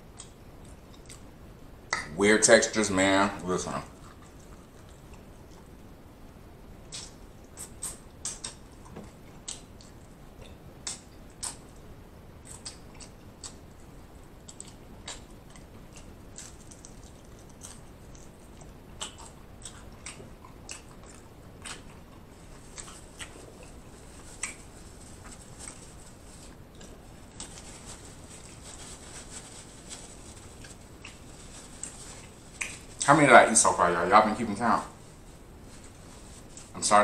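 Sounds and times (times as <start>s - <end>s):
chewing crispy fried chicken: 0.1s - 1.3s, 3.3s - 5.9s, 6.9s - 33.0s
mouth clicks: 6.9s - 8.6s.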